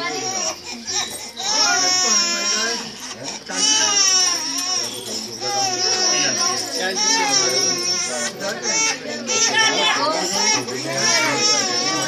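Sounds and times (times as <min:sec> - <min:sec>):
infant crying: 0:00.0 - 0:12.0
people's voices: 0:00.0 - 0:12.0.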